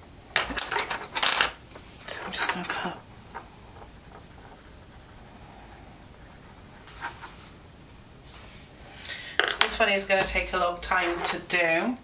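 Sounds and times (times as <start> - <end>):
coloured pencils clinking: 0.3 - 5.1.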